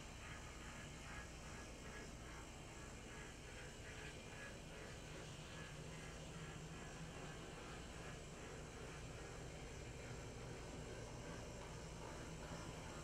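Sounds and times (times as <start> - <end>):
model train motor hum: 0.0 - 13.0
rhythmic wheel noise: 0.0 - 13.0.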